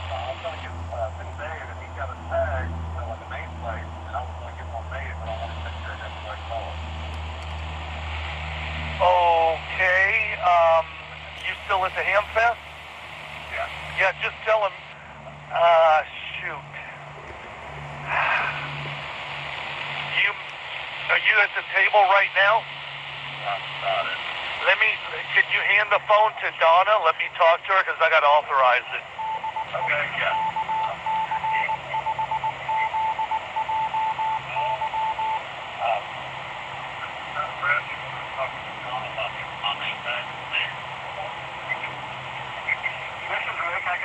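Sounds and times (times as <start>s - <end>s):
steady radio hiss: 0.0s - 44.0s.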